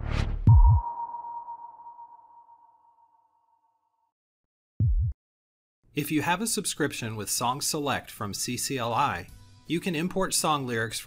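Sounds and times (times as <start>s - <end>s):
bell-like ringing tone: 0.6s - 3.7s.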